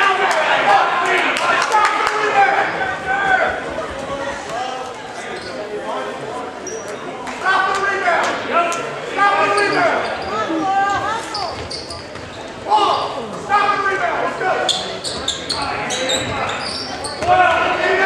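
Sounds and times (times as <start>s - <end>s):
shoe squeaks: 5.2s - 5.6s, 11.1s - 12.6s, 14.6s - 17.2s
spectators shouting: 17.2s - 18.0s.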